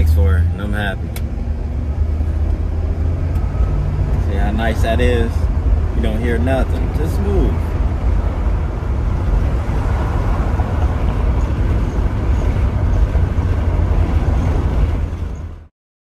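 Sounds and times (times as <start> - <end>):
car engine and road noise: 0.0 - 15.7.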